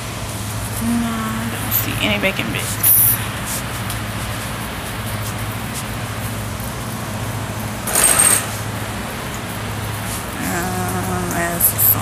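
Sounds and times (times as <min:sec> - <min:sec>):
steady low hum: 0:00.0 - 0:12.0
shopping cart rolling: 0:07.8 - 0:08.7.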